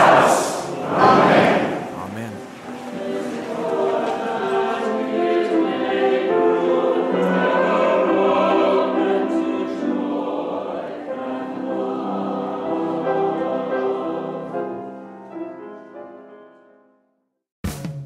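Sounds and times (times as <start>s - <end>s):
church choir singing: 0.0s - 16.5s.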